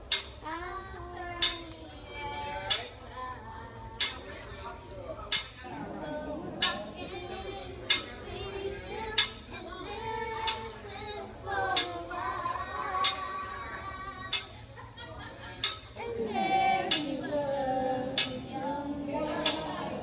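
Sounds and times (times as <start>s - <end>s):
woman singing: 0.4s - 4.1s, 5.7s - 14.5s, 16.0s - 20.0s
metal utensils clinking on griddle: 15.6s - 16.0s, 16.9s - 17.2s, 18.2s - 18.5s, 19.4s - 19.8s.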